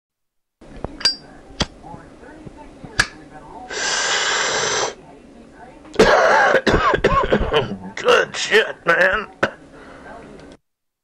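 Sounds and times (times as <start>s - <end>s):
faint background noise: 0.6s - 10.6s
sharp clinks: 1.0s - 1.3s.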